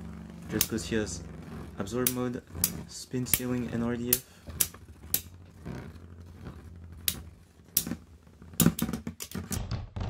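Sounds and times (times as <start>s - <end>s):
spinning tops whirring: 0.0s - 9.6s.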